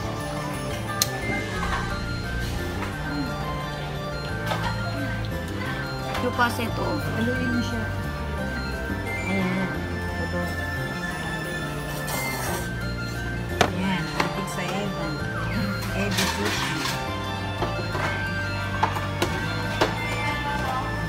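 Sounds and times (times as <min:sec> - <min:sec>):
background music with bass line: 0:00.0 - 0:15.9.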